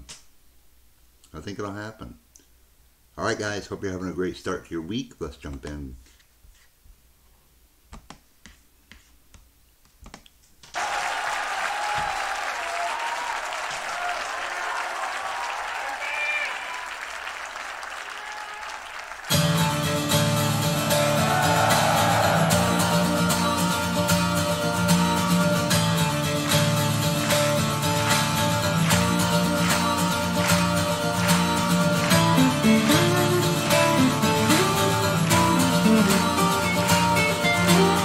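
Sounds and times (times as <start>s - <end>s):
crowd cheering and applauding: 10.7s - 38.0s
soft guitar intro: 19.3s - 38.0s.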